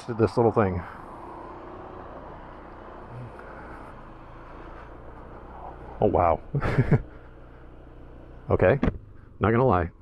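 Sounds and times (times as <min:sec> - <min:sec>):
scooter engine humming: 0:01.0 - 0:10.0.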